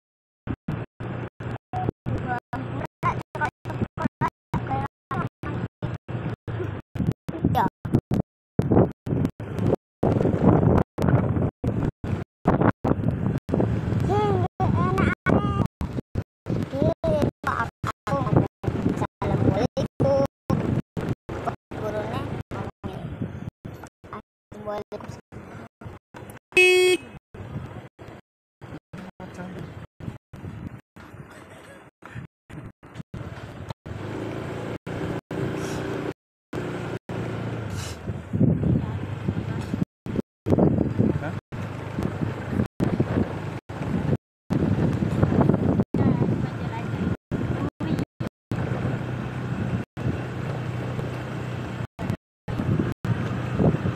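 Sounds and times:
car road noise: 0.5 - 8.0, 8.6 - 53.9
vehicle engine running: 0.5 - 53.9
wind buffeting microphone: 0.7 - 23.8, 27.4 - 31.5, 37.2 - 53.9.

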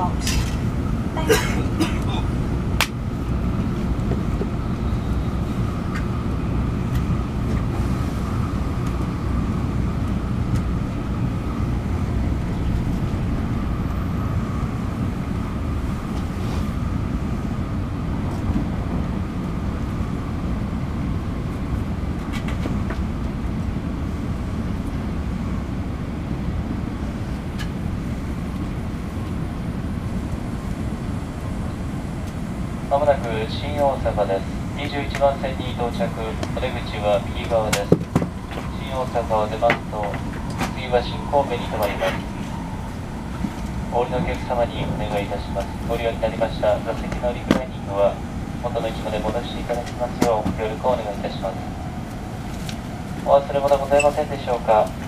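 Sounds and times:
train running gear rumble: 0.0 - 55.0
faint high whine: 28.4 - 52.4.

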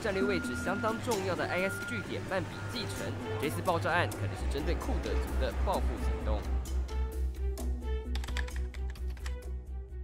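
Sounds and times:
computer keyboard typing clicks: 8.1 - 9.4.

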